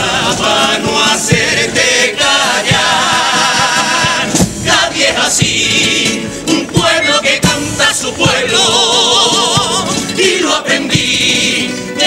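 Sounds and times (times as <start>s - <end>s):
guitar accompaniment: 0.0s - 12.0s
male choir singing: 0.0s - 12.0s
sharp percussion strokes: 0.1s - 11.8s.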